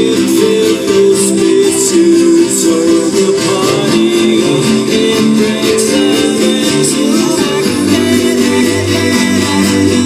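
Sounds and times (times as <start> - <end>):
loud live concert music: 0.0 - 10.0.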